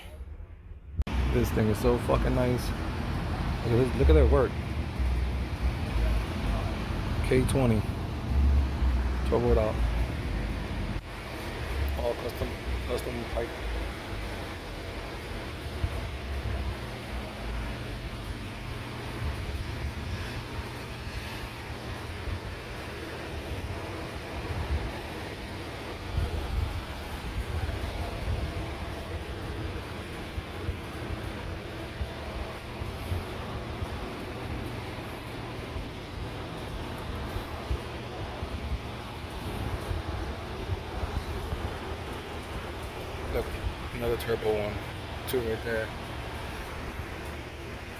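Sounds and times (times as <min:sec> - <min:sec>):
wind buffeting microphone: 0:13.5 - 0:47.9.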